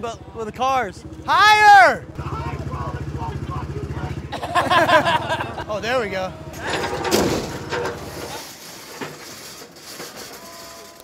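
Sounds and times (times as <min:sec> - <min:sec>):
car crashing down metal impact: 0:06.5 - 0:11.0.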